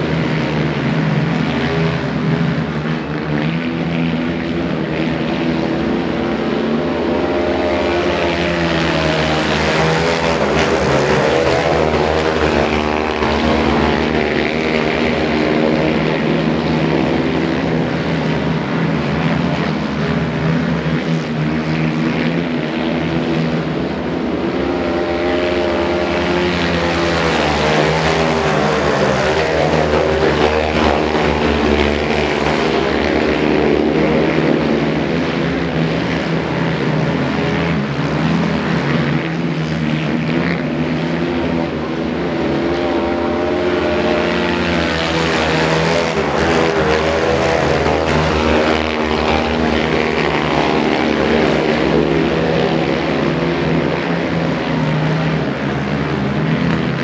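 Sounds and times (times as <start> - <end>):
quad bike engines revving: 0.0 - 57.0.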